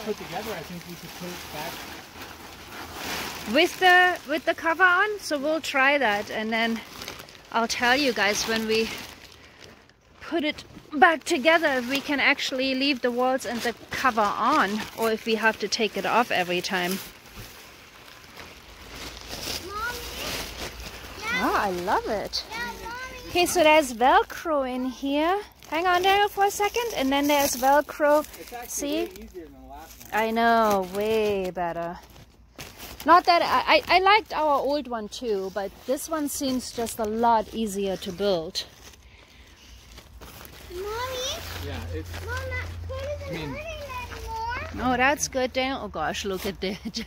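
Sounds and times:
fabric canopy rustling: 0:00.0 - 0:47.0
child calling: 0:19.6 - 0:20.4, 0:21.2 - 0:21.8, 0:22.4 - 0:23.6, 0:40.7 - 0:41.6, 0:42.2 - 0:44.8.

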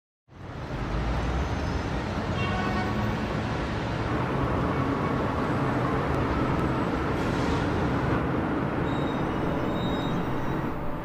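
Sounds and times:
highway traffic passing at speed: 0:00.3 - 0:11.0.

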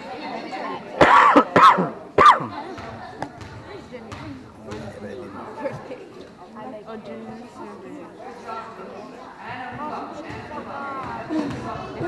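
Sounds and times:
girls shouting calls: 0:01.0 - 0:02.7.

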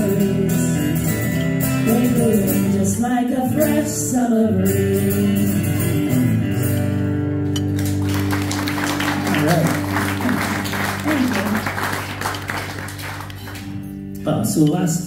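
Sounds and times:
guitar chord ringing: 0:05.8 - 0:14.8
audience clapping: 0:07.6 - 0:14.0
people calling out: 0:09.2 - 0:11.8.

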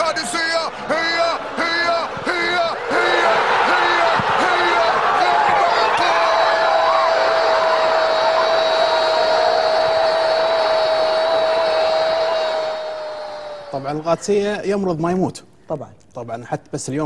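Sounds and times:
commentator long shout: 0:00.0 - 0:13.9
stadium crowd cheering: 0:00.0 - 0:14.2.

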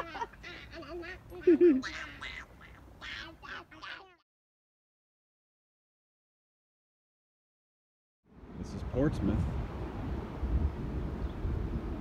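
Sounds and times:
young child giggling: 0:00.0 - 0:02.5.

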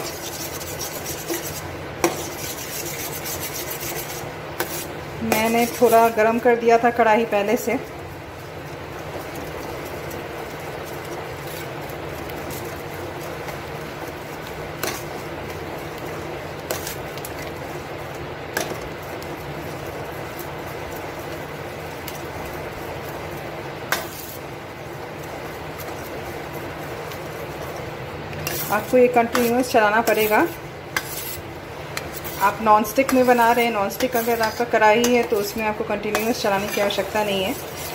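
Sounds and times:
butter bubbling and hissing: 0:00.0 - 0:06.6, 0:07.4 - 0:37.9.

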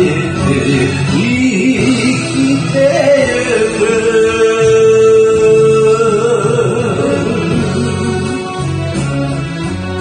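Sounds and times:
man singing into a microphone: 0:00.0 - 0:08.6
karaoke backing track: 0:00.0 - 0:10.0.

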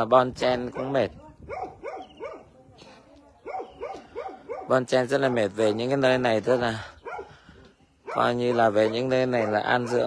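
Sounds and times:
dog barking: 0:00.6 - 0:02.6, 0:03.4 - 0:06.0, 0:07.0 - 0:07.4, 0:08.0 - 0:10.0.

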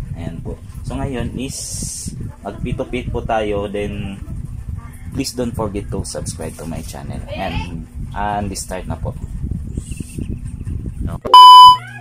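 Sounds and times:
loud electronic beep: 0:11.3 - 0:11.8.

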